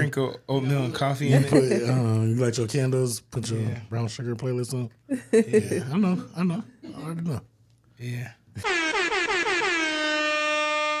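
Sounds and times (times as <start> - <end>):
bright horn-like logo tone: 8.6 - 11.0.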